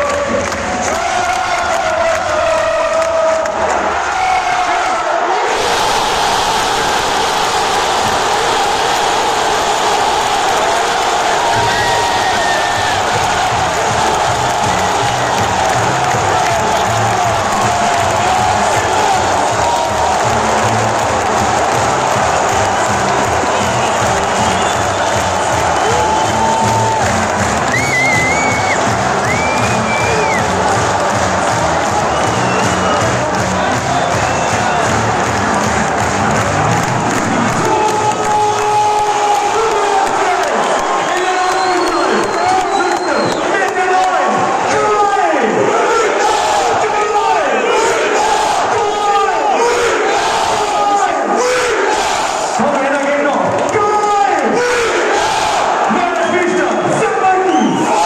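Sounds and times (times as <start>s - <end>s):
stadium crowd roaring and cheering: 0.0s - 58.0s.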